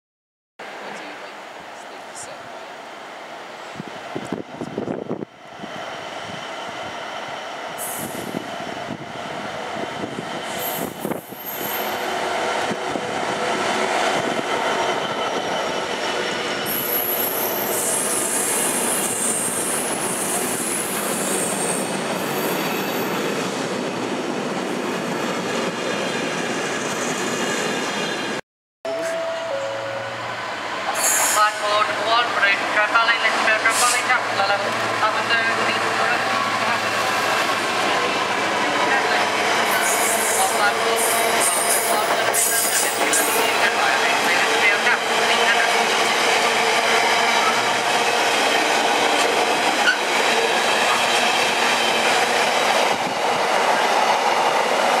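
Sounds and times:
diesel locomotive approaching: 0.6 - 55.0
freight train rumbling on rails: 0.6 - 55.0
train wheels squealing: 10.4 - 12.0, 16.5 - 23.2, 39.6 - 43.6.

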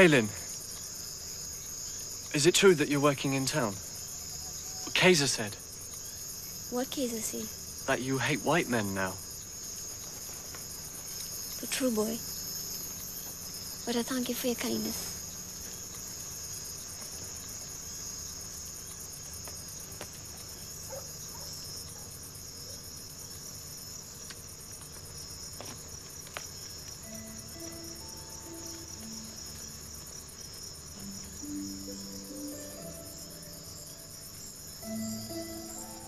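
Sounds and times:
crickets chirring: 0.0 - 36.0
soft sustained music notes: 27.0 - 36.0.

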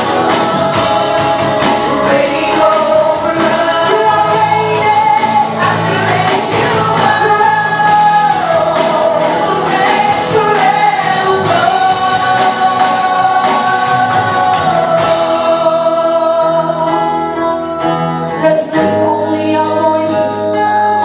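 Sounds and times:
acoustic guitar: 0.0 - 21.0
voices singing along: 0.0 - 21.0
woman singing into microphone: 0.0 - 21.0.

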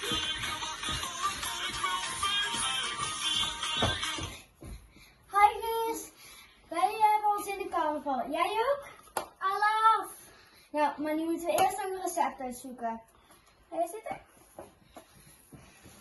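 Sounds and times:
dance music: 0.0 - 4.5
girls speaking in sing-song phrases: 9.4 - 13.0.

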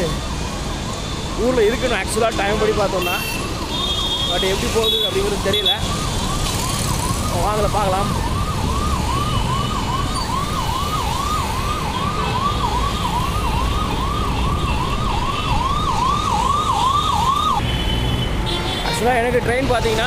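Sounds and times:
road traffic rumble: 0.0 - 20.0
siren in rising sweeps: 5.3 - 17.6.

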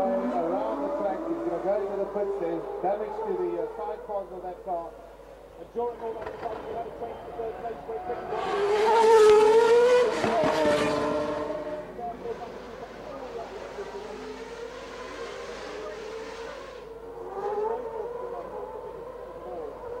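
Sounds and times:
distant race engines droning: 0.0 - 20.0
race car engine rising and falling: 5.8 - 20.0
race car engine passing by: 6.0 - 20.0.

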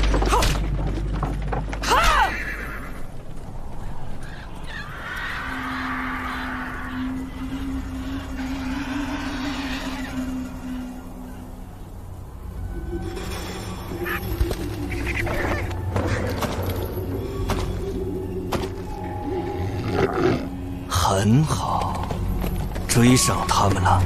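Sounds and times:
windy hiss: 2.8 - 24.0.

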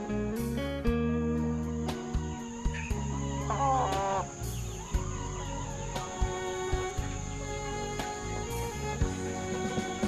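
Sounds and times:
background music: 0.0 - 10.0
rooster call: 2.4 - 6.9.

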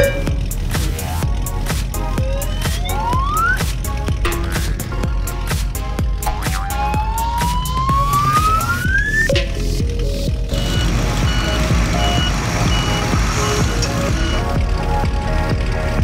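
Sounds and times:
noisy vehicle rumble: 0.0 - 16.0
upbeat background music: 0.0 - 16.0.

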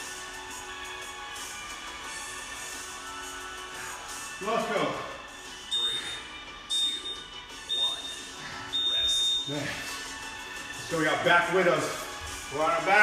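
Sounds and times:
digital timer beeping: 5.7 - 9.6.

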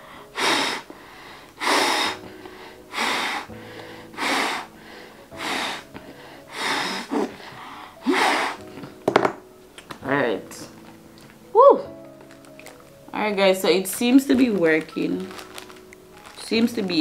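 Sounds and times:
puffs of breath through mask: 0.0 - 8.8
faint background music: 0.0 - 17.0.

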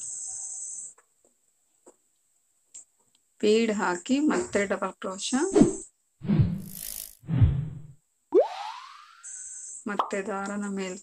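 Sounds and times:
cartoon boing: 8.3 - 9.2.

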